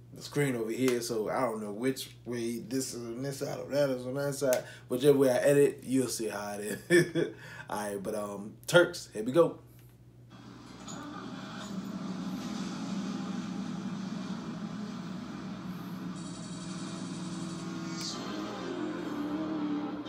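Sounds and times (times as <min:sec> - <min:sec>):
ambient music bed: 0:10.3 - 0:20.0
low vehicle rumble: 0:10.6 - 0:17.8.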